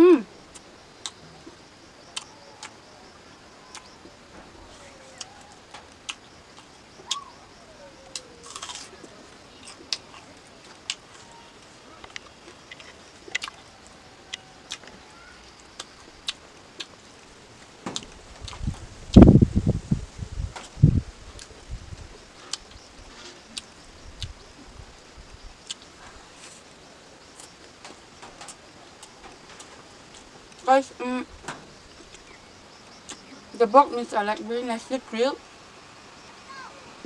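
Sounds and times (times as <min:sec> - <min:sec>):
close chewing clicks and smacks: 0:12.0 - 0:13.6.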